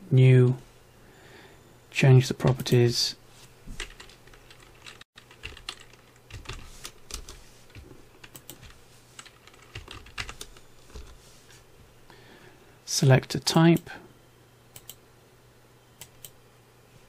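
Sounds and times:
computer keyboard typing: 3.8 - 11.2.

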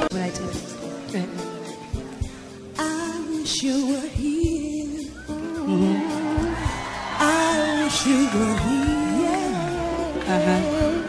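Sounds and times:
soul-pop band playing: 0.0 - 11.0
woman singing wordless notes: 2.8 - 11.0.

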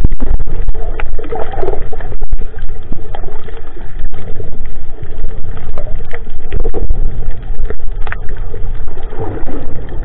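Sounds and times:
underwater low rumble: 0.0 - 10.0.

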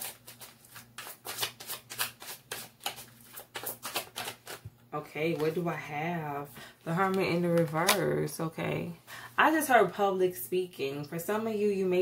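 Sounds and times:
cards being shuffled: 0.0 - 4.7, 7.0 - 8.1.

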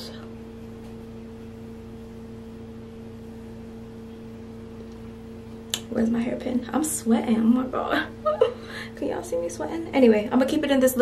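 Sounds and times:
steady two-pitch hum: 0.0 - 11.0.

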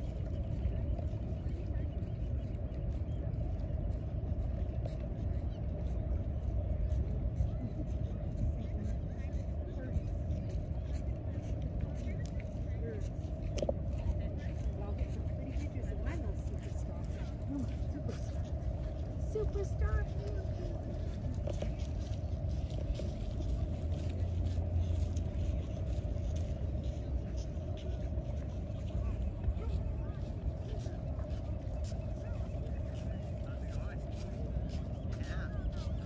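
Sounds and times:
faint voices talking: 0.0 - 36.0
low outdoor rumble: 0.0 - 36.0.

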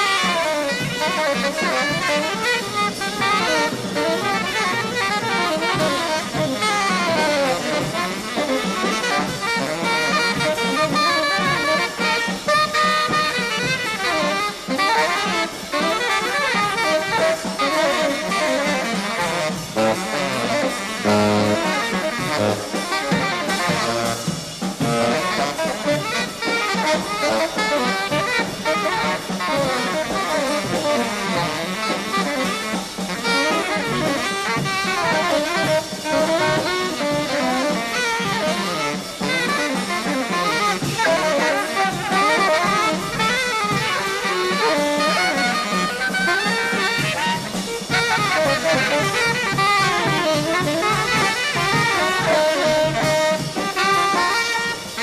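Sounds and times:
big band accompaniment: 0.0 - 55.0
drum kit: 0.0 - 55.0
tenor saxophones playing jazz: 0.0 - 55.0.

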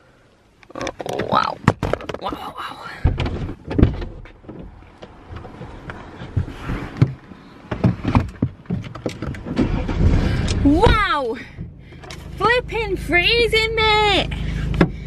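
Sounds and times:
thumps and knocks in car seat: 1.0 - 11.8
car engine starting and running: 3.1 - 15.0.

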